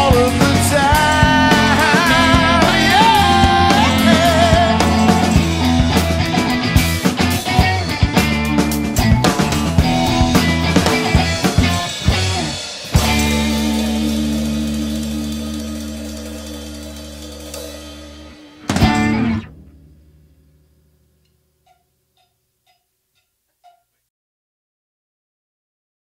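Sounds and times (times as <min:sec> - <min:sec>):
rock band ending a song: 0:00.0 - 0:20.2
cymbals ringing: 0:00.1 - 0:07.0, 0:13.0 - 0:21.0
faint ticks: 0:21.2 - 0:23.9.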